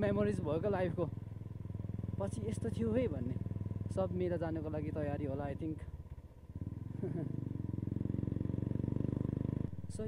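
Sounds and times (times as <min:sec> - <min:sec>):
motorcycle engine revving: 0:00.0 - 0:10.0.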